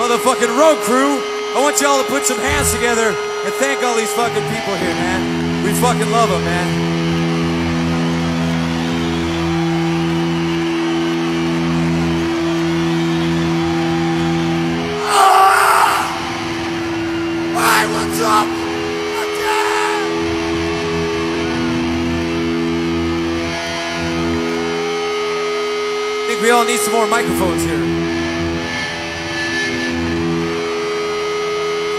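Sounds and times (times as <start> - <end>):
droning electric guitars and bass: 0.0 - 31.9
people shouting: 15.0 - 20.4.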